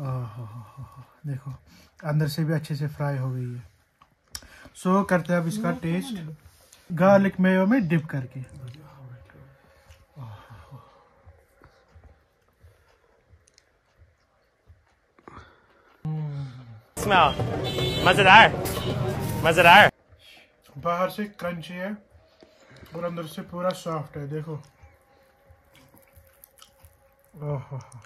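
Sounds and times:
chewing crisp fried food: 3.6s - 4.8s, 8.3s - 16.1s, 23.6s - 28.0s
man's voice: 5.0s - 6.3s, 17.0s - 18.6s, 19.4s - 19.9s
fried fish crust crackling: 25.7s - 28.0s.

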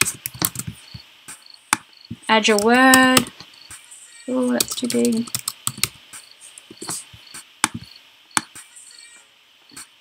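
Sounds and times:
keyboard and mouse clicks: 0.0s - 1.0s, 1.7s - 3.4s, 4.6s - 6.0s, 6.6s - 8.6s.

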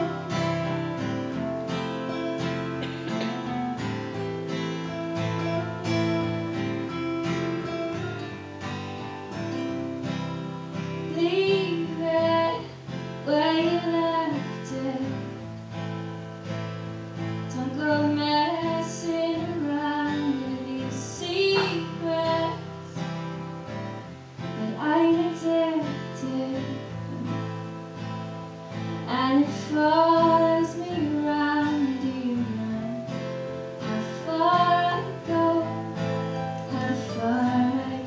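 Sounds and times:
woman singing: 0.0s - 1.8s, 10.8s - 15.5s, 17.5s - 23.1s, 24.5s - 27.7s, 29.0s - 38.0s
acoustic guitars playing: 0.0s - 38.0s.

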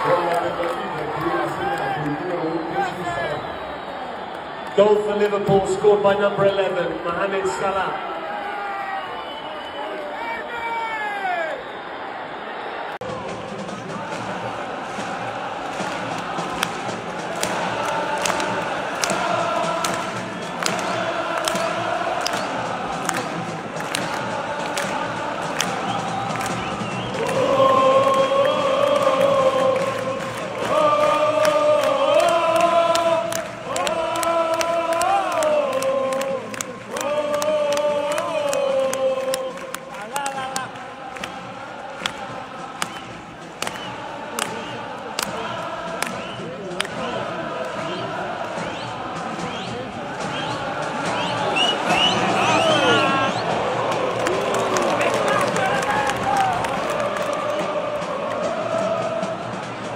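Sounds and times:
stadium crowd singing a chant: 11.6s - 59.9s
sharp claps: 14.9s - 58.5s.

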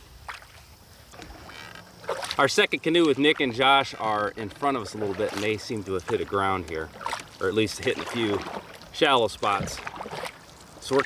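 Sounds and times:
paddle drawn through water: 0.0s - 11.0s.

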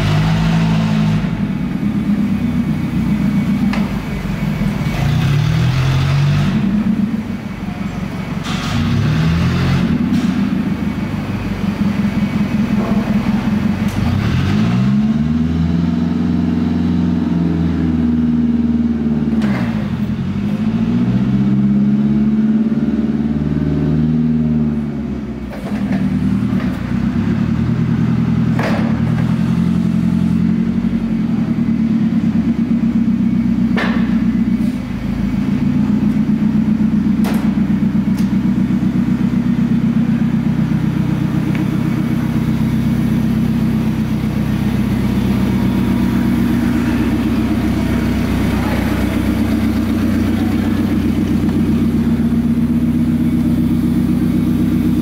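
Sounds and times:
forklift engine revving: 0.0s - 55.0s.

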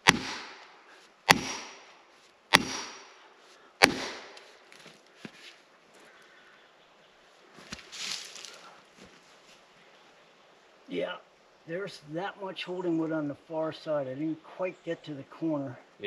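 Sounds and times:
hammer blows on wedges: 1.3s - 1.8s, 2.5s - 3.2s, 3.8s - 4.5s.

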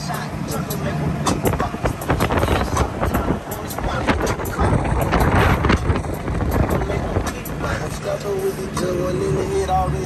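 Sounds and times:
wind on microphone: 1.2s - 8.0s.

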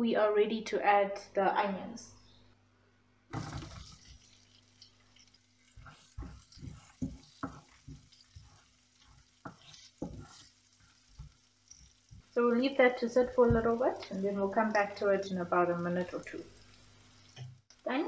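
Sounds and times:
onions sizzling in hot oil: 3.3s - 18.0s
wooden spoon knocking and scraping pan: 5.7s - 12.4s, 13.2s - 14.9s.

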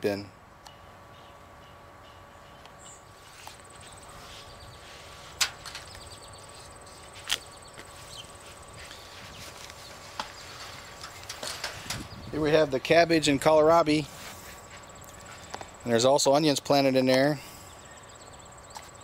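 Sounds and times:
footsteps in a garden: 2.6s - 15.8s
handling noise: 5.0s - 12.2s.

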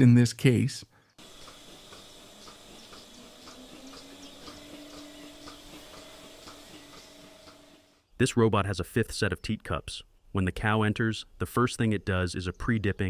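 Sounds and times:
milking machine pulsators ticking: 1.2s - 8.0s
machine hum: 1.2s - 8.1s.

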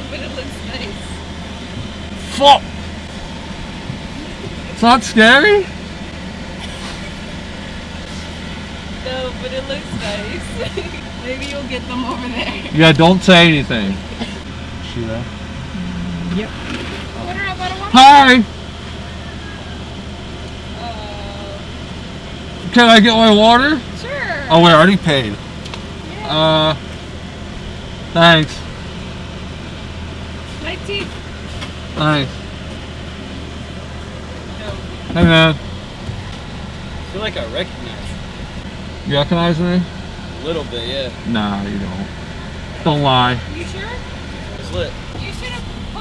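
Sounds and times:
car engine idling: 0.0s - 46.0s.

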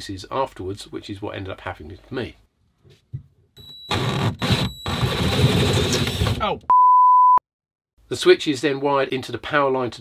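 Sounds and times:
power drill boring: 3.9s - 6.4s
censor bleep: 6.7s - 7.4s.

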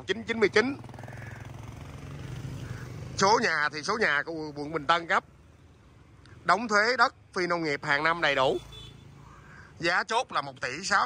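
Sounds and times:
motorbike engine running: 0.0s - 4.7s.

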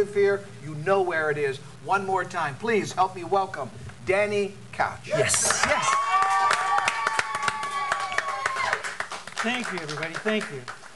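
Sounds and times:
audience clapping: 5.2s - 10.9s.

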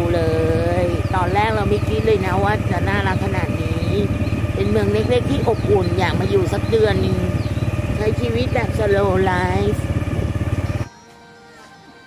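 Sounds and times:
woman speaking: 0.0s - 7.4s, 8.0s - 9.8s
small engine running: 0.0s - 12.0s.

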